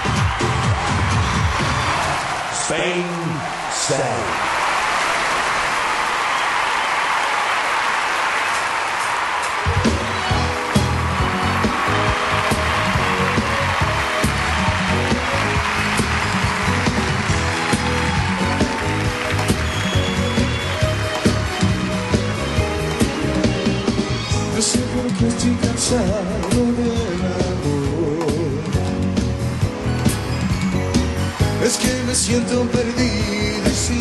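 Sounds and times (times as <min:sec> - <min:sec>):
concert crowd noise: 0:00.0 - 0:34.0
band playing bass and drums: 0:09.6 - 0:34.0.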